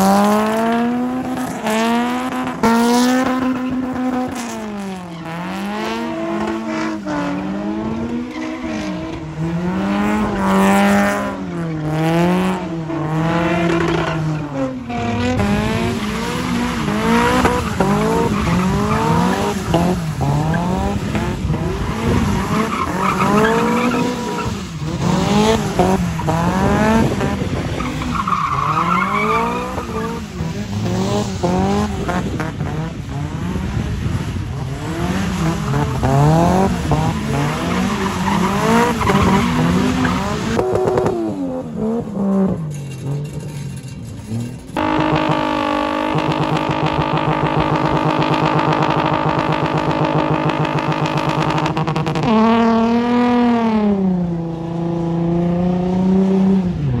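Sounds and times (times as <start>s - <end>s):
car engines revving hard: 0.0s - 57.0s.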